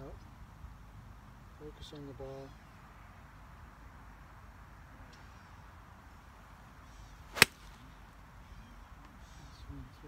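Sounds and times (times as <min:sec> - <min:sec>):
golf club striking ball: 0:07.3 - 0:07.8
golf club swing whoosh: 0:07.3 - 0:07.8.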